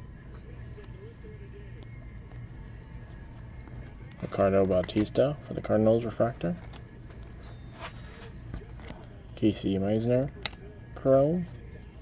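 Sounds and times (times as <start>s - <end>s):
steady low hum: 0.0s - 12.0s
cards sliding against each other: 6.6s - 9.2s, 10.2s - 10.6s.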